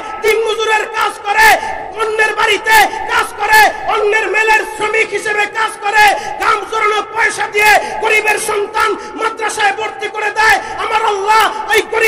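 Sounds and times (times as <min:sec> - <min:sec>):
man preaching over loudspeaker: 0:00.0 - 0:12.0.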